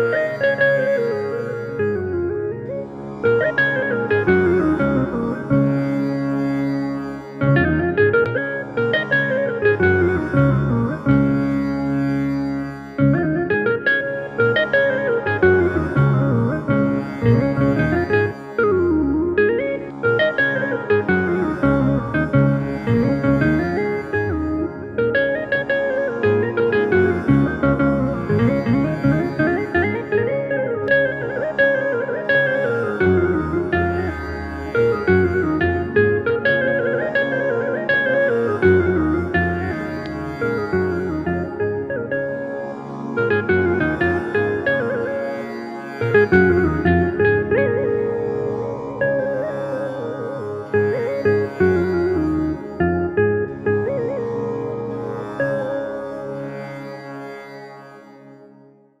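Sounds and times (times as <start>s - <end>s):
electronic keyboard melody: 0.0s - 56.9s.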